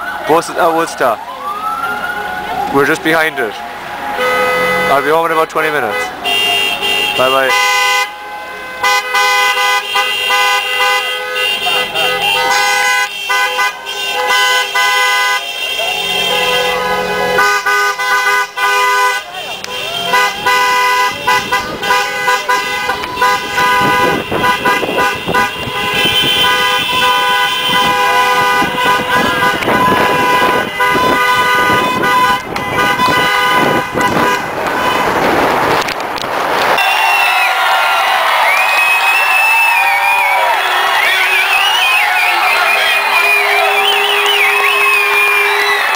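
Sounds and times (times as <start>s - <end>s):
crowd cheering: 0.0s - 5.2s, 8.1s - 45.9s
car horns blasting: 2.8s - 35.8s, 36.7s - 37.4s, 40.4s - 45.9s
voices: 19.1s - 27.0s.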